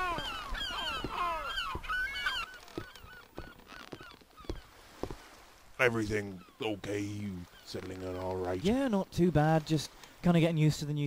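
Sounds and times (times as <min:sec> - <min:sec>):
seagulls calling: 0:00.0 - 0:08.7
soft footsteps: 0:00.1 - 0:08.6.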